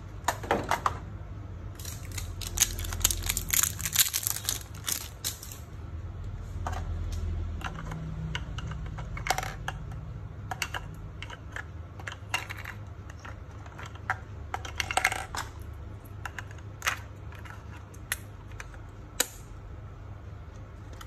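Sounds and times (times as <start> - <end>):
low steady hum: 0.0 - 21.0
batteries clicking and clinking: 1.8 - 5.6, 7.6 - 19.4.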